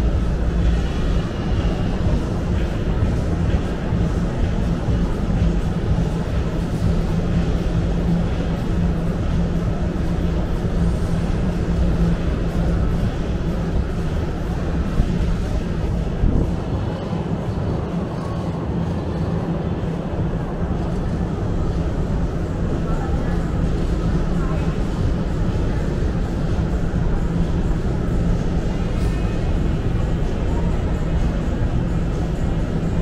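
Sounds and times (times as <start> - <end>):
low rumble and hum: 0.0 - 33.0.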